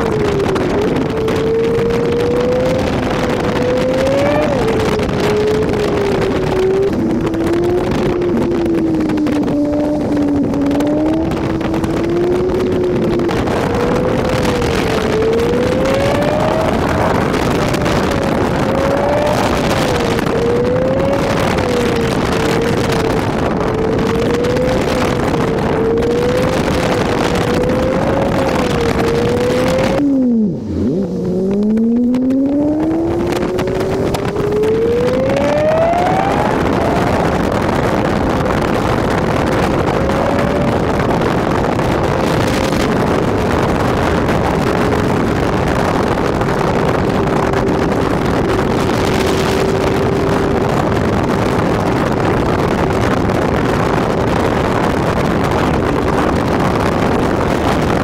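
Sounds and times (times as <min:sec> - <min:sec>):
car engine revving: 0:00.0 - 0:58.0
road and wind noise: 0:00.0 - 0:58.0.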